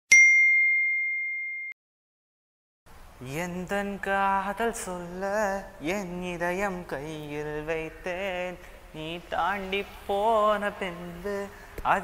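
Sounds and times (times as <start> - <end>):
bell-like ding: 0.1 - 1.8.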